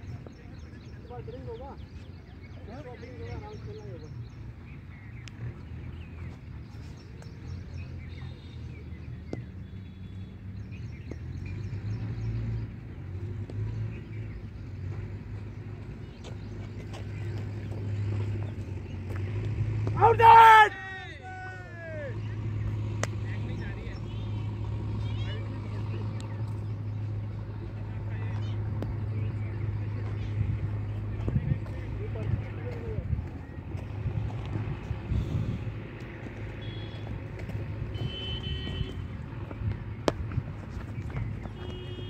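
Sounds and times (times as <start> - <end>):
faint chirps and clicks: 5.0 - 7.5, 26.0 - 30.4
player shouting: 20.0 - 22.2.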